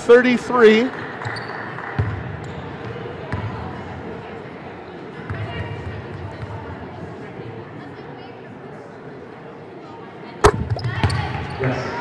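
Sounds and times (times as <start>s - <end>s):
basketball bouncing on court: 10.4s - 11.5s.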